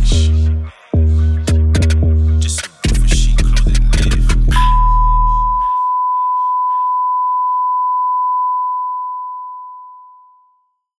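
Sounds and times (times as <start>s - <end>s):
hip-hop beat: 0.0s - 7.0s
steady electronic beep tone: 4.6s - 10.4s.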